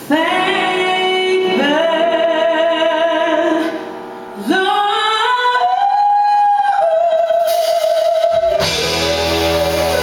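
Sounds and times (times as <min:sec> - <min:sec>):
woman singing unaccompanied: 0:00.0 - 0:03.7, 0:04.4 - 0:10.0.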